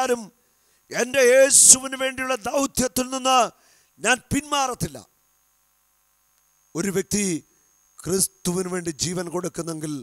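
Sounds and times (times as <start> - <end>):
man speaking into a microphone: 0.0 - 5.1, 6.7 - 10.0
faint electrical hum: 0.0 - 10.0.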